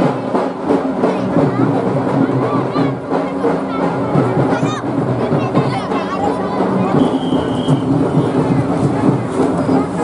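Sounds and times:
crowd noise: 0.0s - 10.0s
band playing: 5.9s - 9.9s.

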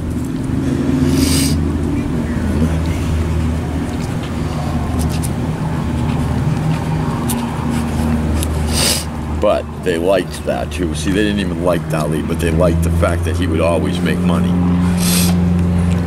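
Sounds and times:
low engine drone: 0.0s - 16.0s.

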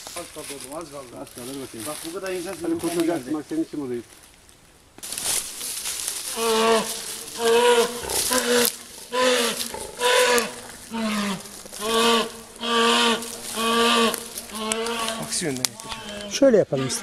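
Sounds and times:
bear bawling in distress: 6.3s - 17.0s.

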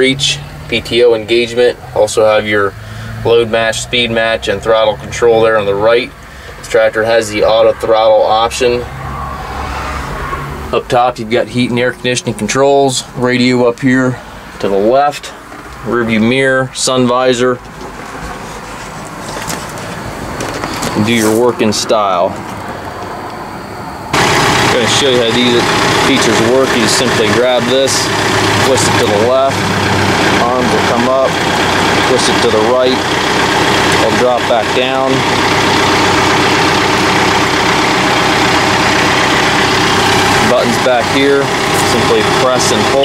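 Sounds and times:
tractor diesel engine running: 0.0s - 43.0s.

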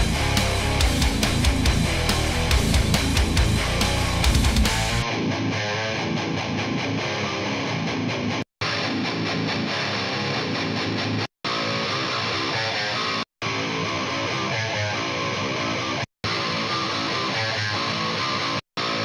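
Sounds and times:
electric guitar riff: 0.0s - 19.0s.

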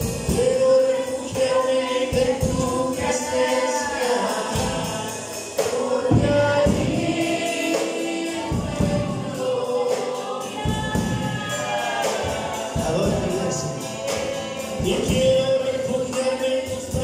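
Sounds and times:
strummed acoustic guitar: 0.0s - 17.0s.

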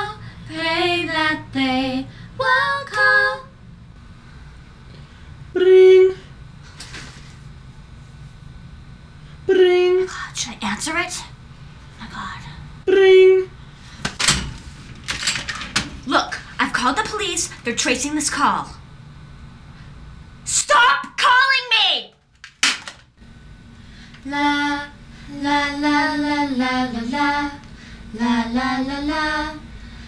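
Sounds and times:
steady low hum: 0.0s - 30.0s.

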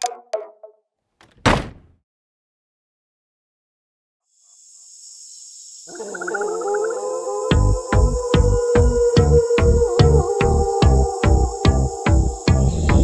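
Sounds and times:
heavy thud: 1.2s - 2.0s.

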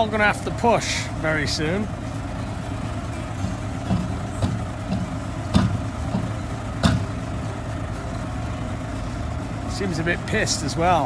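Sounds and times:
diesel engine running: 0.0s - 11.0s
sharp knocks: 3.8s - 7.2s.

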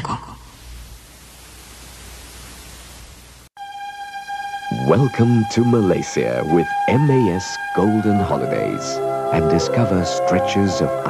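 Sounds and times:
videotape hiss: 0.0s - 11.0s
low hum: 0.5s - 9.8s.

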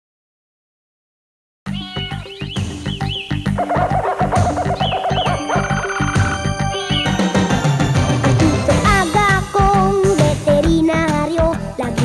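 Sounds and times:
upbeat theme music: 1.7s - 12.0s
chirping pitch swoops: 2.2s - 8.7s
bouncing bass: 2.6s - 9.9s
warbling melody line: 3.0s - 9.6s.

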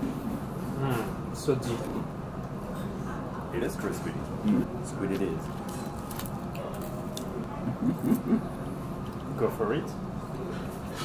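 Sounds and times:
background murmur: 0.8s - 9.6s
person humming while eating: 7.5s - 8.6s.

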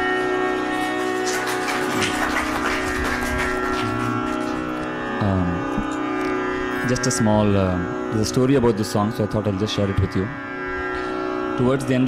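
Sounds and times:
tanpura drone: 0.0s - 12.0s.

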